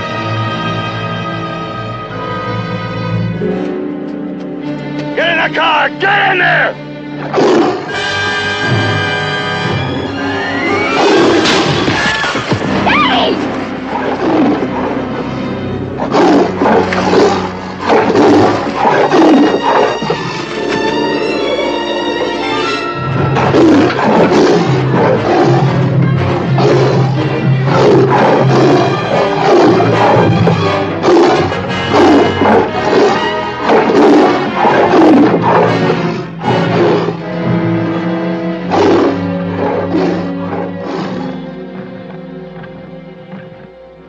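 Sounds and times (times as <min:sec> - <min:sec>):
loud orchestral music: 0:00.0 - 0:44.0
tiger roaring: 0:07.2 - 0:08.0, 0:12.8 - 0:20.6, 0:21.4 - 0:37.5, 0:38.5 - 0:42.3.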